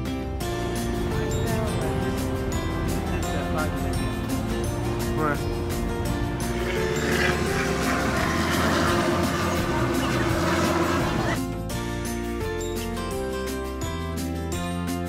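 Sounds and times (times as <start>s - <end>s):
music with vocals: 0.0s - 15.0s.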